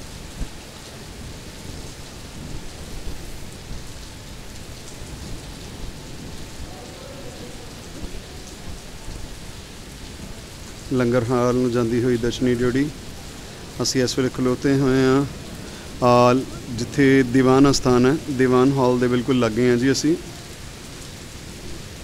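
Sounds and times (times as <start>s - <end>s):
heavy rain falling: 0.0s - 22.0s.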